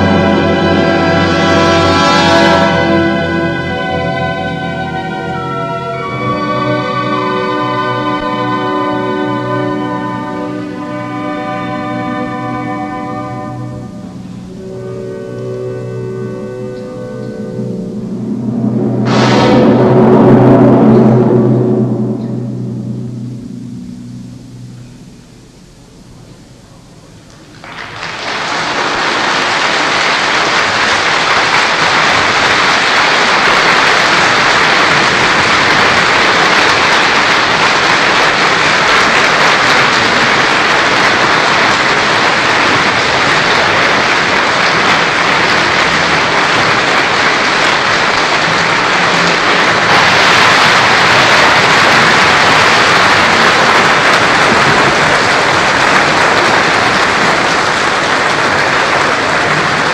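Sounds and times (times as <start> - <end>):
audience applauding: 0.0 - 11.2, 27.3 - 59.9.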